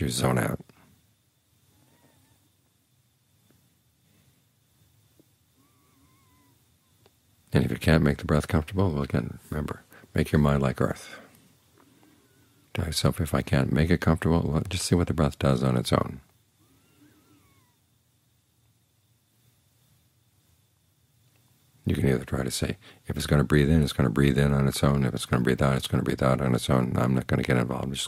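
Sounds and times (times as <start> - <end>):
faint low hum: 0.0 - 28.0.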